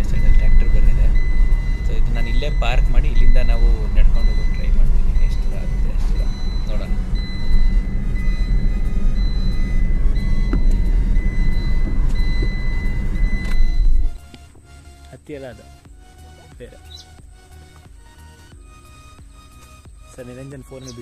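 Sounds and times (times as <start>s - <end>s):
car cabin low rumble: 0.0s - 21.0s.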